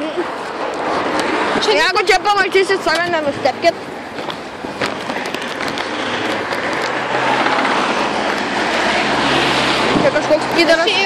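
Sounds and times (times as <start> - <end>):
truck engine hum: 0.0 - 11.0
tyre noise: 0.0 - 11.0.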